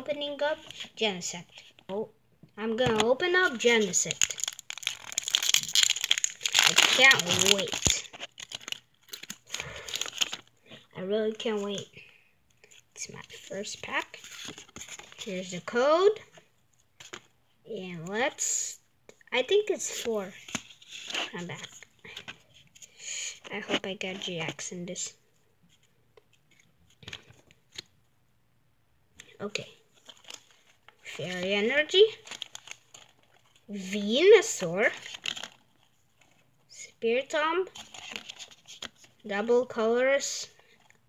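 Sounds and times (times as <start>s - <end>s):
cards rustling and clicking: 2.8s - 10.5s, 12.5s - 15.3s, 17.0s - 17.3s, 30.0s - 33.6s, 34.4s - 35.6s, 37.7s - 39.2s
foil wrapper crinkling: 3.7s - 10.5s, 32.2s - 33.6s.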